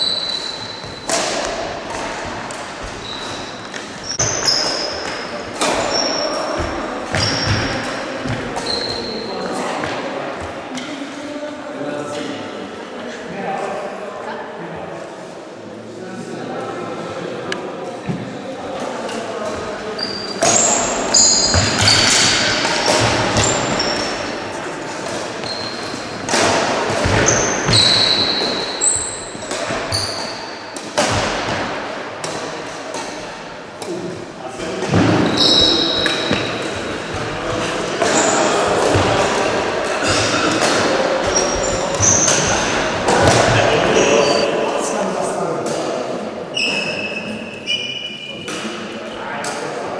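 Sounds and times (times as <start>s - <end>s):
racket hitting shuttlecock: 0.8s - 5.9s, 20.4s - 34.0s, 38.0s - 43.6s
shoes squeaking on wooden floor: 2.7s - 9.6s, 19.6s - 30.6s, 34.9s - 39.2s, 41.2s - 44.4s
indistinct voices: 32.2s - 49.9s.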